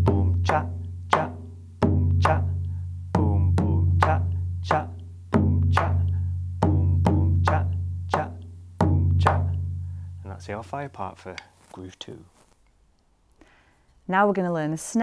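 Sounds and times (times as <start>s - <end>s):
deep bass drum booms: 0.0s - 10.0s.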